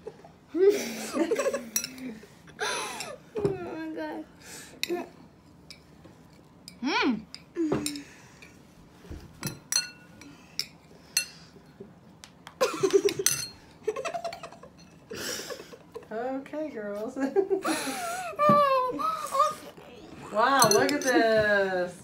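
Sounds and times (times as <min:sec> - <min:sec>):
children giggling: 0:00.0 - 0:01.8, 0:12.6 - 0:16.1
metal spoon clinking ceramic bowl: 0:09.4 - 0:11.4, 0:13.2 - 0:13.6, 0:20.6 - 0:21.3.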